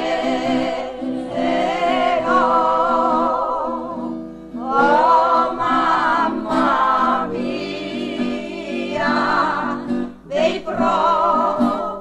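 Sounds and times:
group singing in parts: 0.0s - 12.0s.

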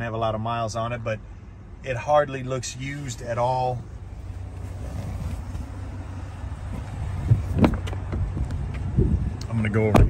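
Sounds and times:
wind on microphone: 6.8s - 9.4s.

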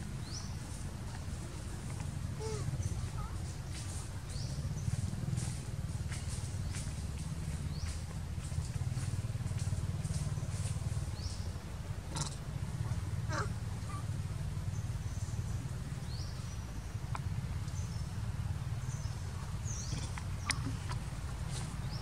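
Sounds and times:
low rumble of distant traffic: 0.0s - 22.0s.

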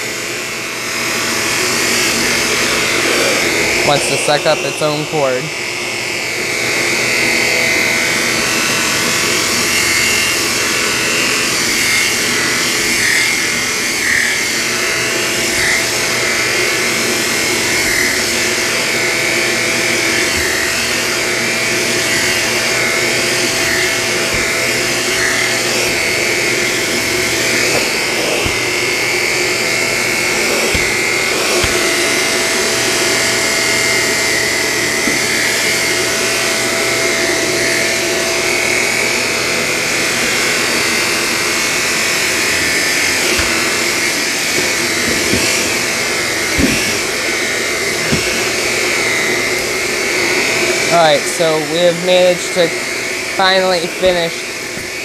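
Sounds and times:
vacuum cleaner running on rug: 0.0s - 55.0s.

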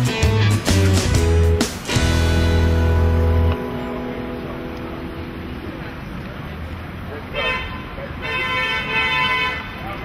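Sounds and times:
street traffic: 0.0s - 10.0s
car horn honking: 7.2s - 10.0s.

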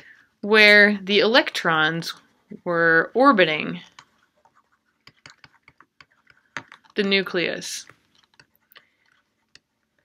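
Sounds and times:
stylus tapping on tablet: 5.0s - 7.1s.

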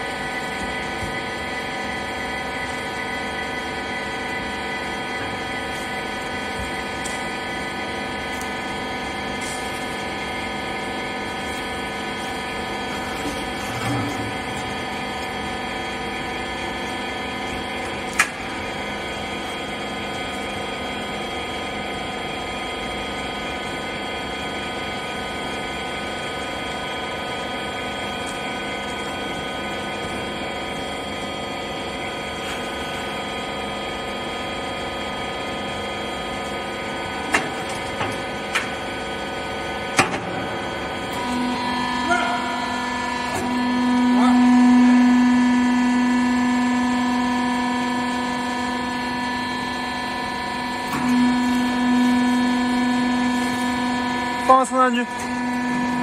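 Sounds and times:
hydraulic power unit humming: 0.0s - 56.0s.

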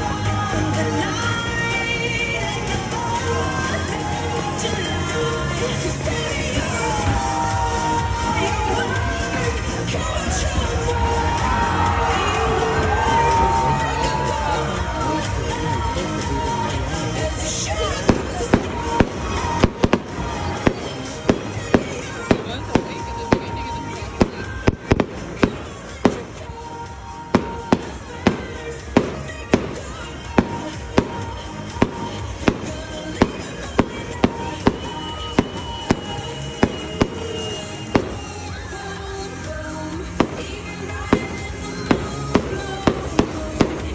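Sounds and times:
music playing: 0.0s - 43.9s
fireworks bursting with sharp bangs: 2.8s - 43.9s.

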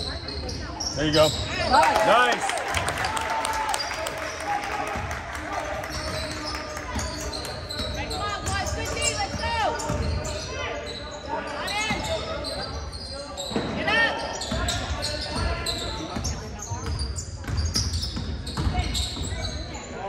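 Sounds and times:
sneakers squeaking: 0.0s - 1.8s, 3.8s - 20.0s.

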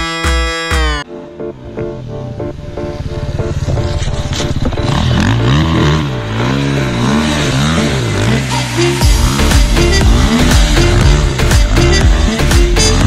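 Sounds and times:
pit bike engine revving: 2.7s - 13.0s.

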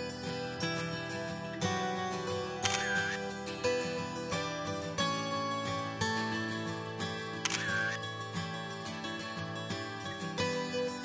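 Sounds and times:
acoustic guitar music: 0.0s - 11.0s
camera shutter click: 2.6s - 3.2s, 7.4s - 8.0s.

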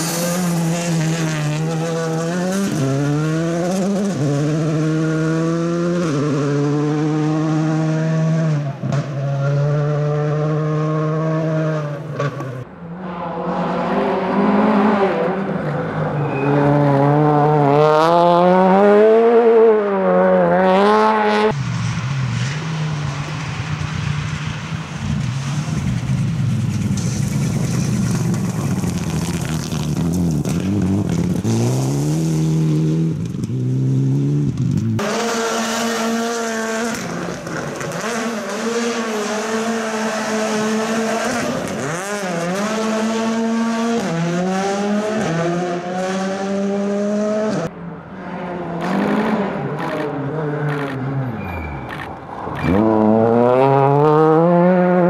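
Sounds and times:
rally car engines at full throttle: 0.0s - 55.0s.

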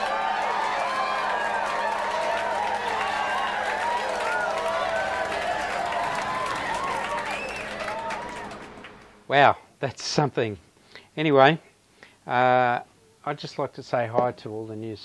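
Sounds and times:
crowd cheering and chattering: 0.0s - 9.3s.

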